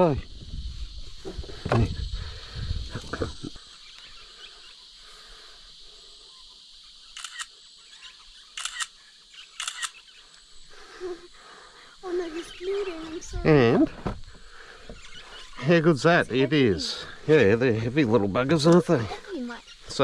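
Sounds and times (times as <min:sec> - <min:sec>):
camera shutter double clicks: 0:07.1 - 0:07.5, 0:08.5 - 0:08.9, 0:09.5 - 0:10.0.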